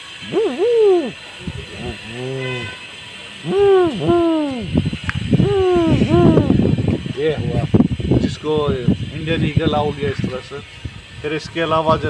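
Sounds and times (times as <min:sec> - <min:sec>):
man imitating owl hoots: 0:00.0 - 0:02.8, 0:03.4 - 0:06.7.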